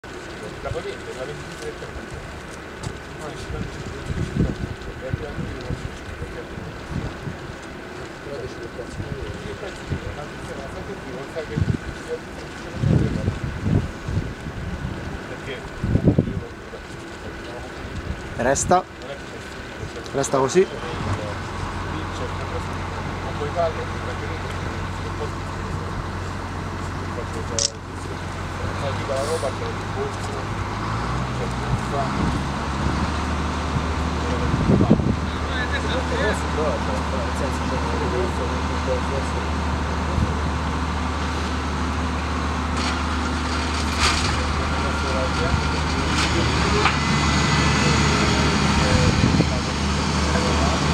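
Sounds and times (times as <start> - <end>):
faint voices: 0.0 - 50.9
outdoor rumble and hiss: 0.0 - 50.9
short clicks: 27.6 - 27.8.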